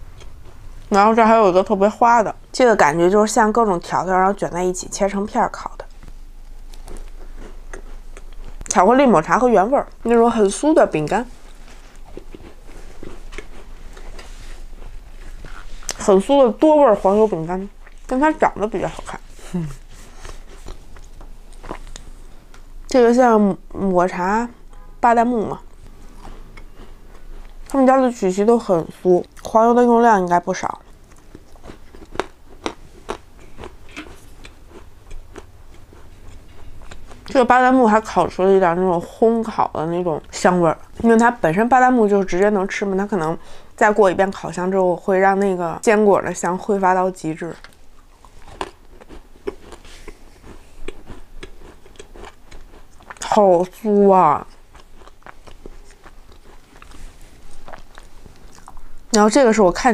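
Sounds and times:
person chewing crunchy cookie: 5.8s - 8.7s, 11.3s - 16.1s, 19.0s - 22.4s, 25.7s - 28.0s, 30.7s - 37.4s, 47.6s - 59.0s.

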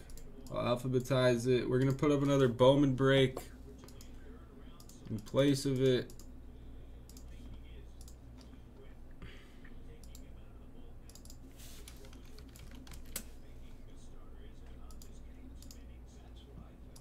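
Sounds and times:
steady low hum: 0.0s - 17.0s
computer keyboard typing: 11.1s - 13.3s, 14.8s - 15.8s.

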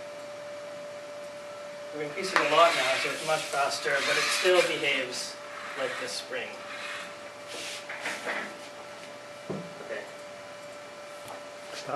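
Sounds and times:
geared motor whine: 0.0s - 11.9s.

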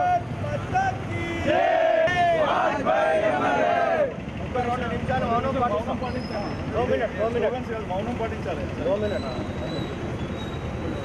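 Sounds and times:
men talking: 0.0s - 9.8s
street traffic rumble: 0.0s - 11.0s.

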